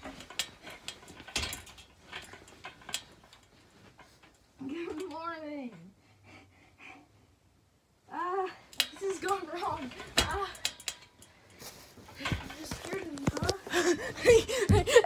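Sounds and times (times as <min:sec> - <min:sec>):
bedding rustling: 0:00.0 - 0:05.8, 0:08.9 - 0:15.0.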